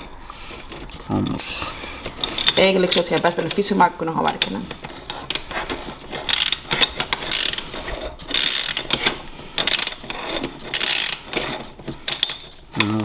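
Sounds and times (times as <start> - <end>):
ratchet wrench clicking: 6.3 - 7.7, 8.3 - 10.0, 10.7 - 11.4.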